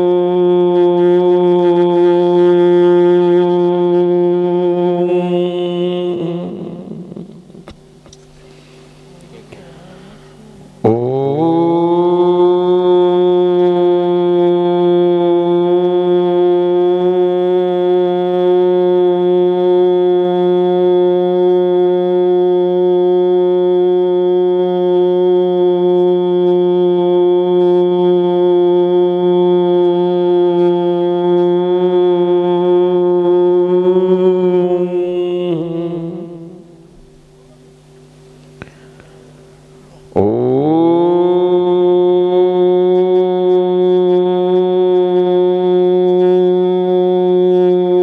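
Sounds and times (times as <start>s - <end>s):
conch shell blown: 0.0s - 48.0s.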